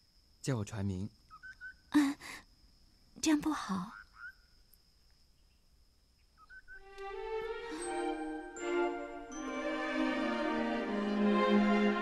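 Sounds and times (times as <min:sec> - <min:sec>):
thin steady high tone: 0:06.4 - 0:12.0.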